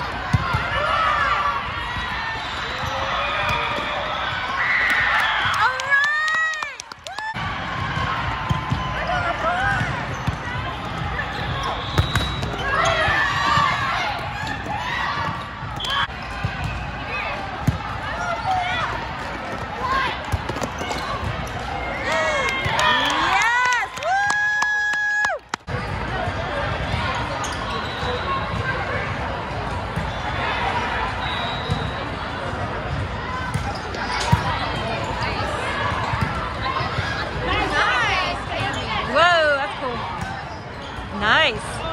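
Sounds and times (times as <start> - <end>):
balls thumping and bouncing: 7.3 - 16.8, 17.4 - 22.9
sneakers squeaking on court: 9.7 - 17.0, 17.6 - 21.7, 27.2 - 28.7, 31.2 - 32.1, 32.8 - 37.2, 38.4 - 39.2, 40.2 - 41.2.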